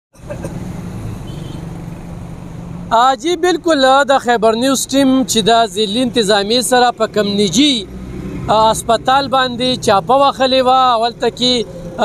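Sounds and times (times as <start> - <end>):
street noise: 0.1 - 12.0
vehicle engine humming: 0.2 - 12.0.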